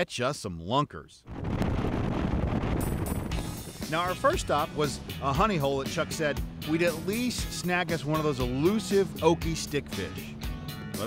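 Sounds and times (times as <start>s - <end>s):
wind noise on microphone: 1.2s - 5.1s
outboard motor running at speed: 2.5s - 11.0s.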